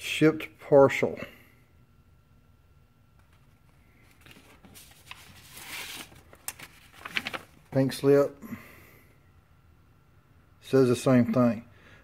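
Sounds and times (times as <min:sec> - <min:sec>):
paper rustling and crinkling: 0:03.2 - 0:07.9.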